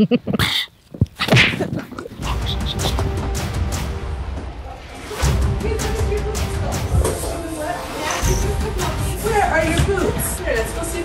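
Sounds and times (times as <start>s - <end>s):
background music with low bass: 2.2s - 11.0s.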